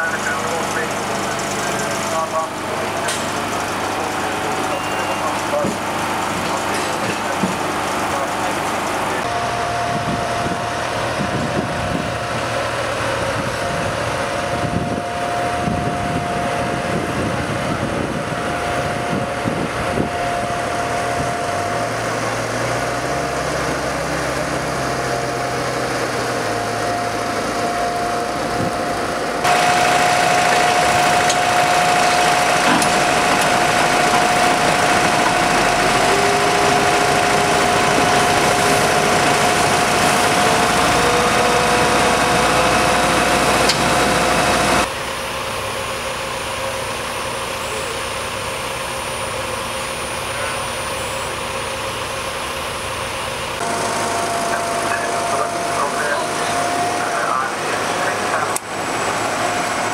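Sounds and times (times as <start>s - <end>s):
constant whine: 0.0s - 59.9s
heavy vehicle engines idling: 0.0s - 59.9s.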